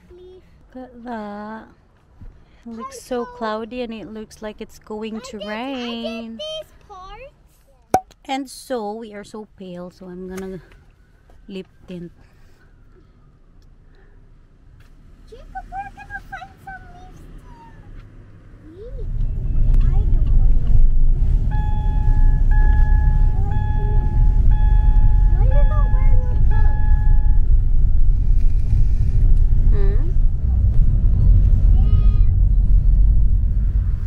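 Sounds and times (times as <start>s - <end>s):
car cabin rumble: 19.1s - 34.0s
electronic beeps: 21.5s - 28.0s.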